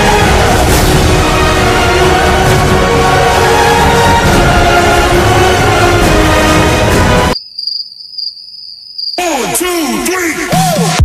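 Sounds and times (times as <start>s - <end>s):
loud music: 0.0s - 7.4s, 9.2s - 11.0s
cricket trill: 7.4s - 9.2s.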